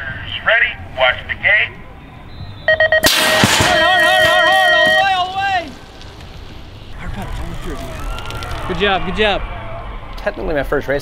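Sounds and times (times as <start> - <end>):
starting gate crashing down: 3.0 - 5.9
voices shouting: 3.2 - 6.0, 6.8 - 10.6.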